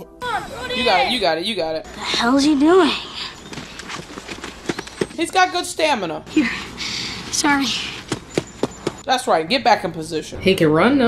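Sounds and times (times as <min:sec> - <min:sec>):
running footsteps on dirt and grass: 0:01.8 - 0:05.7, 0:06.6 - 0:09.1.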